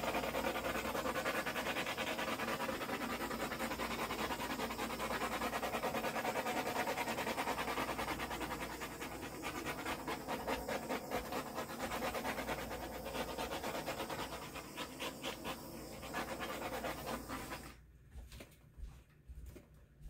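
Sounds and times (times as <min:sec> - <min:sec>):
dog panting: 0:00.0 - 0:17.8.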